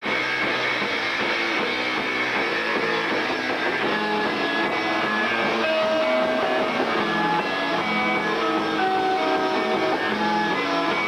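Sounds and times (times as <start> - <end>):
drums: 0.0 - 11.0
electric guitar: 0.0 - 11.0
rock band playing live: 0.0 - 11.0.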